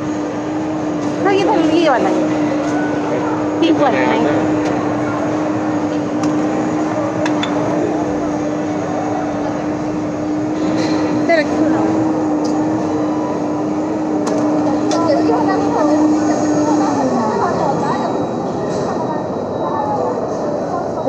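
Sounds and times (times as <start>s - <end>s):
background chatter: 0.0s - 21.0s
mechanical hum dropping in pitch: 0.0s - 21.0s.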